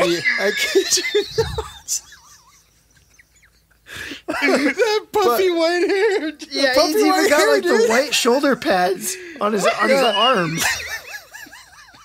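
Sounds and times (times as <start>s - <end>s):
faint laugh: 0.0s - 5.0s.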